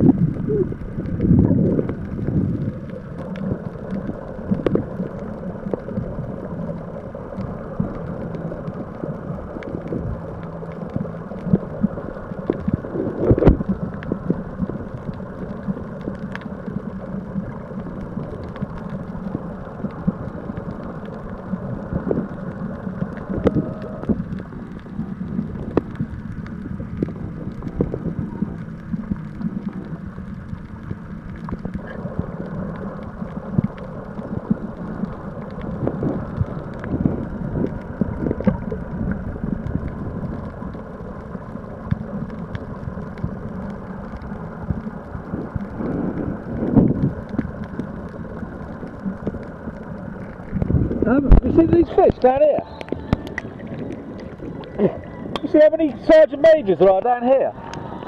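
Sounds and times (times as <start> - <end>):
muffled underwater rumble: 0.0 - 58.0.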